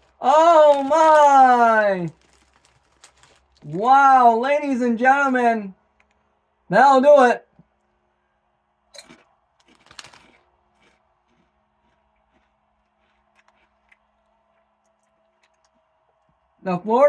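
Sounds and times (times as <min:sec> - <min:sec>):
potato chip crunching: 0:00.0 - 0:04.3, 0:09.0 - 0:16.3
chewing crunches: 0:02.1 - 0:03.7, 0:08.9 - 0:16.5.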